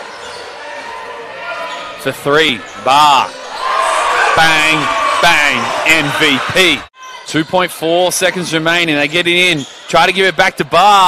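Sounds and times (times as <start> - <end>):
large hall ambience: 0.0 - 11.0.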